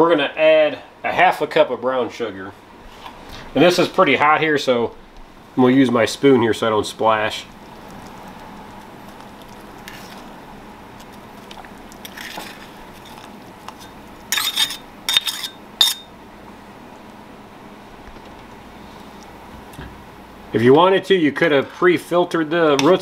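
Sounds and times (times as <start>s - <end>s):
metal spoon scraping: 12.0s - 16.1s.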